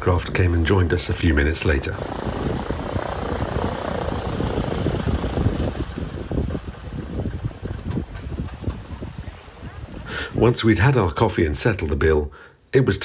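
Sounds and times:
floatplane propeller engine putter: 0.0 - 10.4.

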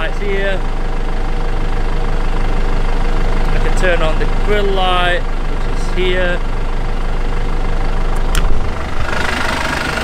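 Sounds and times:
vehicle engine idling: 0.0 - 10.0.

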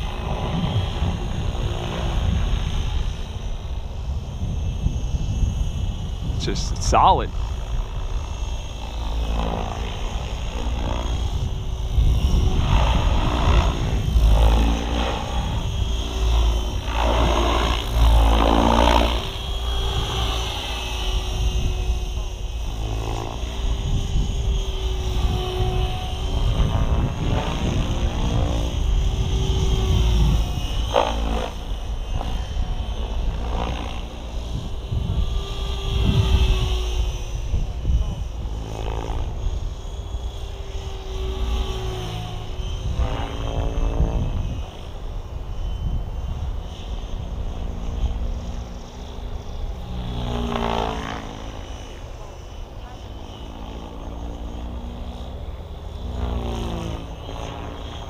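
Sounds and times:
wind buffeting microphone: 0.0 - 53.1
rc helicopter rotor hum: 0.0 - 58.0.

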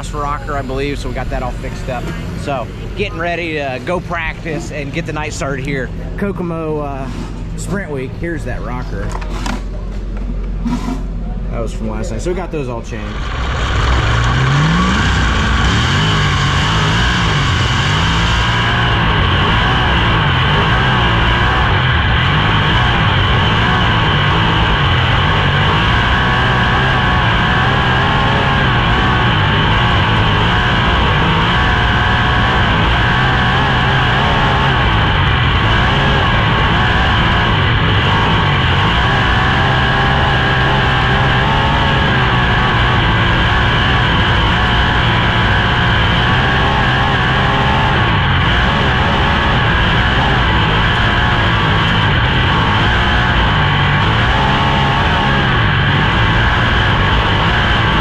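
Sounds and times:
race car engine at speed: 0.0 - 58.0.

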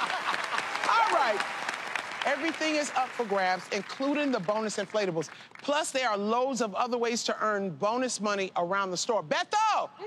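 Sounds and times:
people clapping: 0.0 - 6.0.

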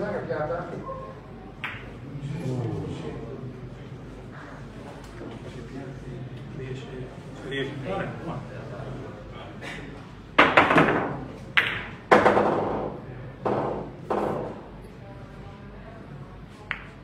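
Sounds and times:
pool balls clacking: 10.4 - 14.4.

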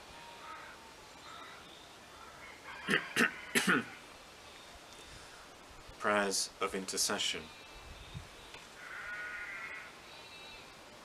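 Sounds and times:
sheep bleating: 8.8 - 9.9.

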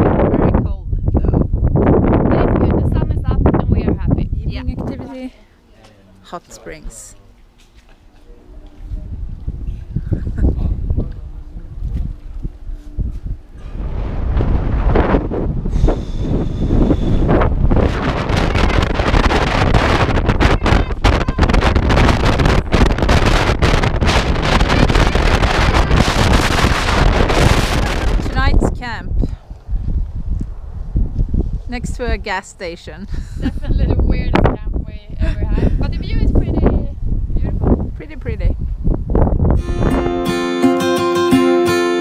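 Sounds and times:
low rumble: 0.0 - 5.3, 9.0 - 32.3, 32.9 - 40.1
wind buffeting microphone: 0.0 - 5.4, 8.7 - 40.4.

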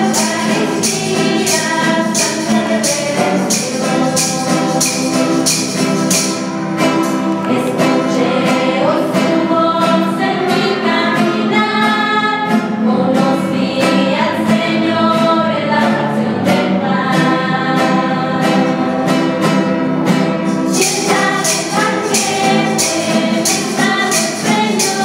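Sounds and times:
shaken tambourines: 0.0 - 11.5, 18.4 - 25.0
women's choir singing a hymn: 0.0 - 19.9, 20.6 - 25.0
strummed acoustic guitars: 0.0 - 25.0.

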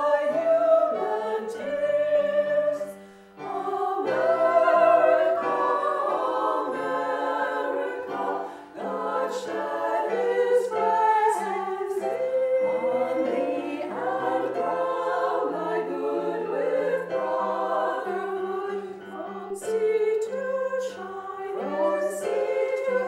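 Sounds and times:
women singing in harmony: 0.0 - 23.0.

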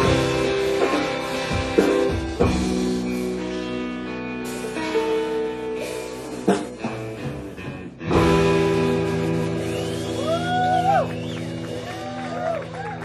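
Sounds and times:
indie rock band playing: 0.0 - 13.0.

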